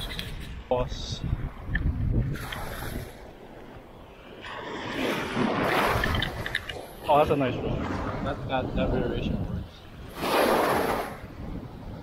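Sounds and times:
wind rumbling on microphone: 0.0 - 12.0
water sloshing: 1.4 - 8.9.

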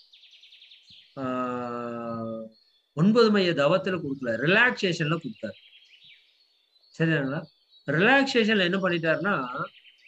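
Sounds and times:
high bird chirping: 0.0 - 10.0.

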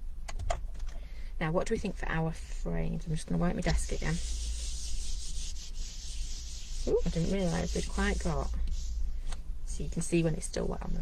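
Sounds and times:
cloth wiping wooden desk: 3.7 - 9.1.

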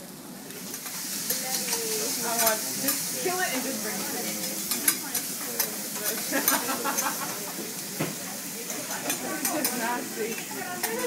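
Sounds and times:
food sizzling on a griddle: 0.0 - 11.0.

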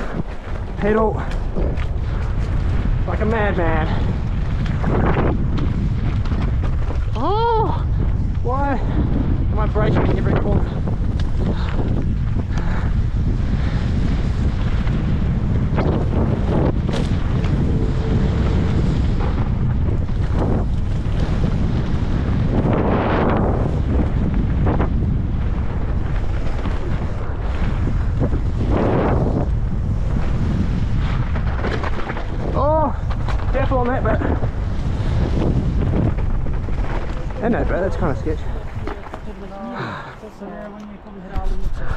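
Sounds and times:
bike tyres on gravel trail: 0.0 - 40.5
wind buffeting microphone: 0.0 - 41.9.

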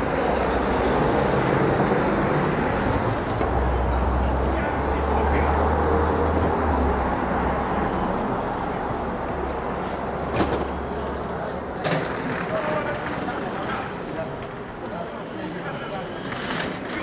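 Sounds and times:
background voices of passersby: 0.0 - 17.0
street traffic rumble: 0.0 - 17.0.

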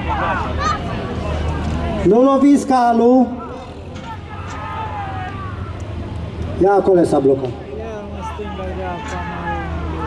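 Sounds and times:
faint voices calling: 0.0 - 10.0.

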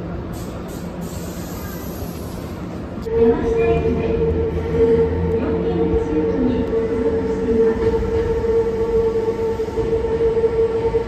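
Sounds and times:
electric train running hum: 0.0 - 11.0.

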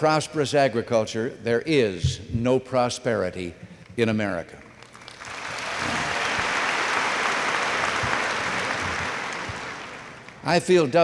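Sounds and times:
audience applauding: 4.8 - 10.5.

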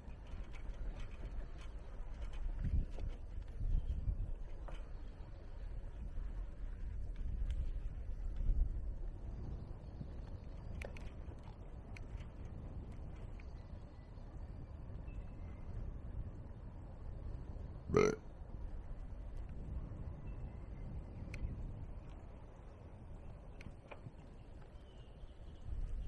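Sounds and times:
faint clicks: 0.0 - 14.6, 21.2 - 26.0
wind buffeting microphone: 0.0 - 26.0.

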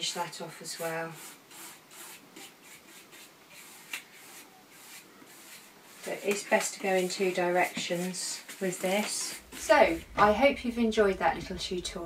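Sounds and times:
paintbrush strokes: 0.0 - 12.0.

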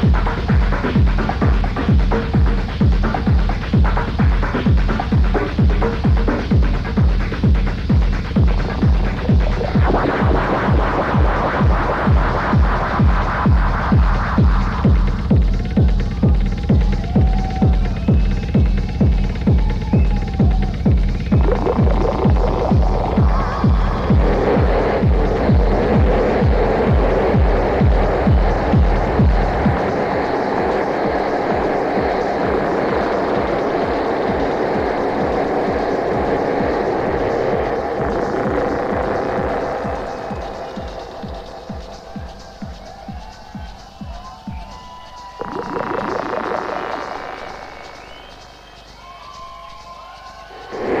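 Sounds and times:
pounding kick drum: 0.0 - 48.3
deep bass: 0.0 - 48.9
noisy synth layer: 0.0 - 51.0.

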